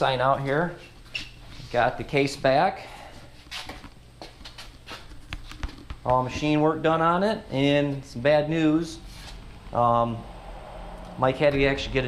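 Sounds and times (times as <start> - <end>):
low steady hum: 0.0 - 12.0
footsteps on concrete: 3.2 - 6.4.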